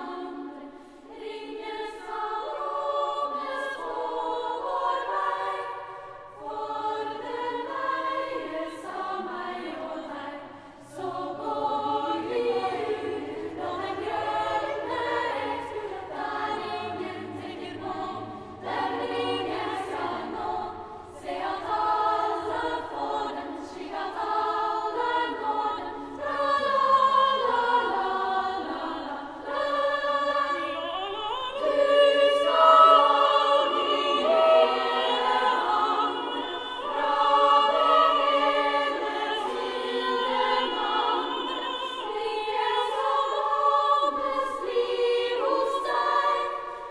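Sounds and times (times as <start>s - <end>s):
girls' choir singing: 0.0s - 46.9s.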